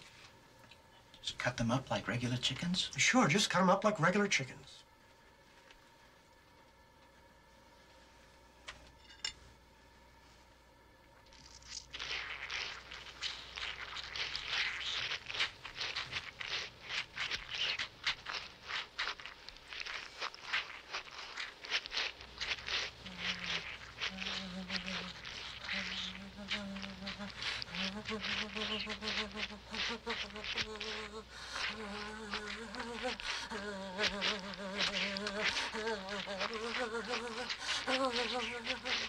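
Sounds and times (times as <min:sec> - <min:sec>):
wet crackling clicks: 0:11.2 - 0:39.0
woman moaning: 0:25.7 - 0:38.9.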